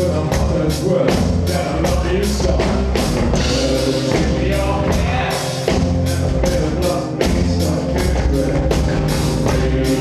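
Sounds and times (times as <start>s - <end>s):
drum hits: 0.0s - 10.0s
rock band playing live: 0.0s - 10.0s.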